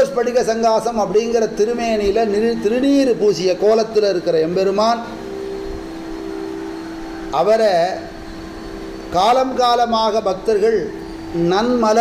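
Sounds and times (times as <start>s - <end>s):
drone of held notes: 0.0s - 12.0s
low hum: 0.0s - 12.0s.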